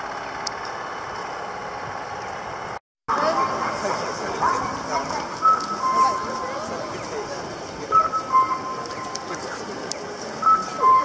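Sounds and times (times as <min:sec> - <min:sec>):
people chattering: 0:03.1 - 0:11.0
crossing signal two-note calls: 0:05.3 - 0:06.6, 0:07.9 - 0:09.3, 0:10.4 - 0:11.0.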